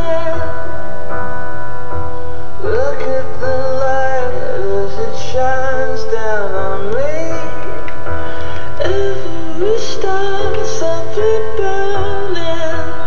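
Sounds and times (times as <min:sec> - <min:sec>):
woman singing pop song: 0:00.0 - 0:00.8, 0:08.6 - 0:13.0
steady backing track: 0:00.0 - 0:13.0.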